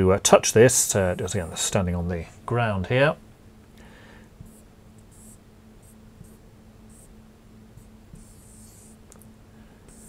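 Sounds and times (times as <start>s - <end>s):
marker pen on whiteboard: 4.4s - 7.1s, 7.8s - 9.1s.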